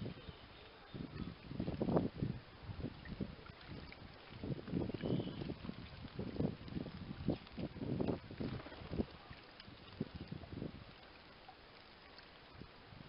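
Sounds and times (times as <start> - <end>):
bird splashing water: 2.9 - 12.8.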